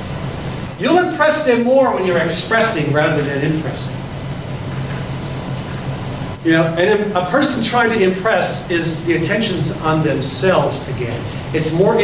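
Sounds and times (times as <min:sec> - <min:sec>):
faint room noise hiss: 0:00.0 - 0:12.0
steady low hum: 0:00.0 - 0:12.0.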